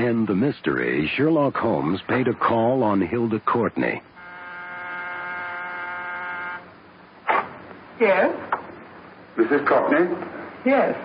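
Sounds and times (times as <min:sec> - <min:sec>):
doorbell buzzer: 0:04.2 - 0:06.7.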